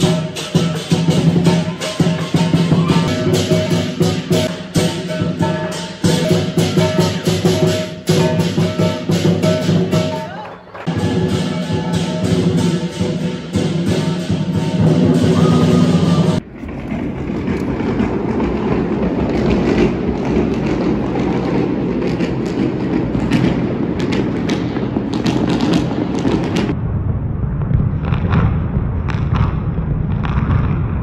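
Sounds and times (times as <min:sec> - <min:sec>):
fireworks crackling and popping: 0:10.8 - 0:31.0
fireworks dull booms: 0:16.4 - 0:31.0.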